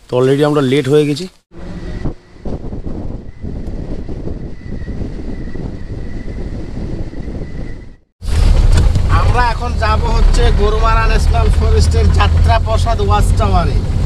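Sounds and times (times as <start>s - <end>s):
vehicle road rumble: 1.5s - 14.0s
wind rushing over camera: 1.6s - 12.6s.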